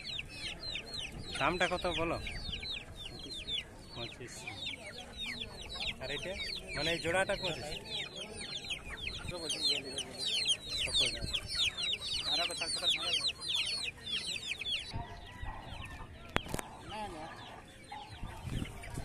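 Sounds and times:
chicks peeping: 0.0s - 19.0s.

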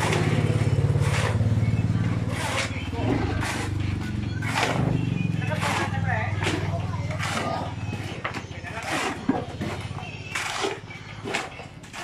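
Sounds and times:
small engine running: 0.0s - 8.2s
hoe scraping wet concrete: 0.0s - 12.0s.

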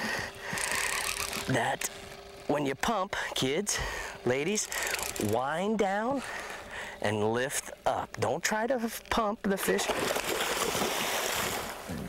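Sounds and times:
fish splashing in water: 9.8s - 11.9s.

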